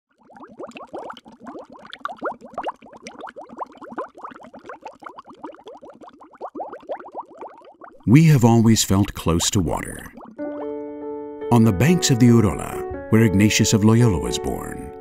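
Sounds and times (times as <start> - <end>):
underwater air bubbles: 0.1 - 8.1, 9.1 - 10.5.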